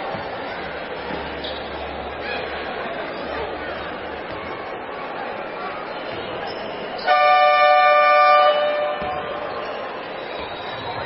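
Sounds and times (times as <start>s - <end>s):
crowd chatter: 0.0s - 11.0s
arena horn blast: 7.1s - 9.2s.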